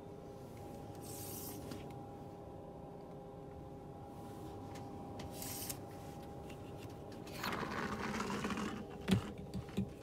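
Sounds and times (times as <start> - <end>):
roller blind sliding rustle: 7.2 - 9.0.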